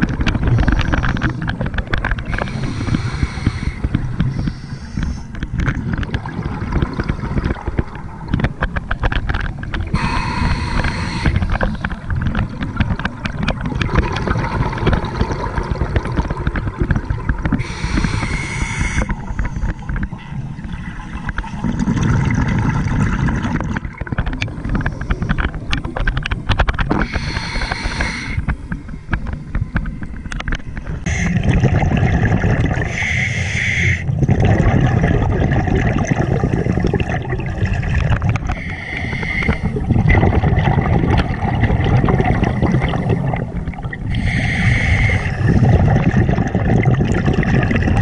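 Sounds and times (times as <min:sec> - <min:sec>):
exhaled bubbles rumbling: 0:00.0 - 0:48.0
regulator hissing inhale: 0:02.4 - 0:05.3, 0:10.0 - 0:11.6, 0:17.6 - 0:19.6, 0:27.0 - 0:28.6, 0:32.9 - 0:34.1, 0:38.5 - 0:39.8, 0:44.1 - 0:45.8.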